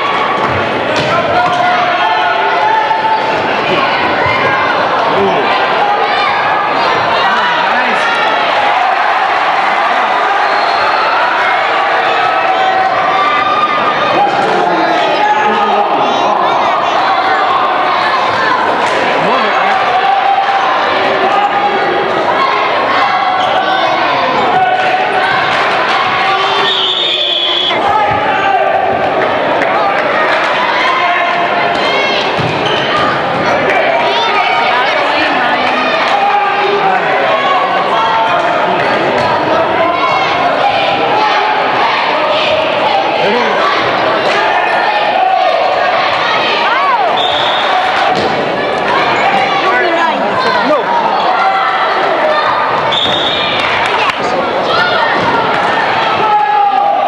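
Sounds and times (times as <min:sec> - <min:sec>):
spectators chattering: 0:00.0 - 0:57.0
referee's whistle: 0:26.4 - 0:27.8, 0:47.1 - 0:47.8, 0:52.9 - 0:53.6.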